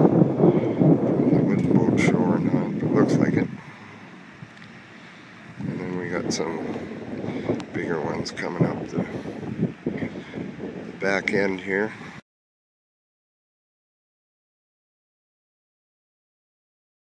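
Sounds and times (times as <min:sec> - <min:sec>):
wind buffeting microphone: 0:00.0 - 0:12.2.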